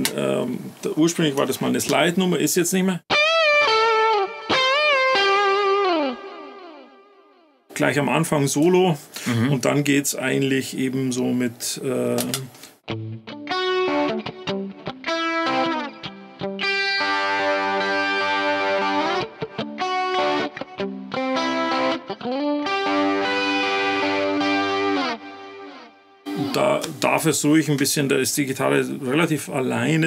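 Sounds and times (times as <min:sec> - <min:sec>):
distorted electric guitar: 0:03.1 - 0:07.3, 0:12.9 - 0:27.0.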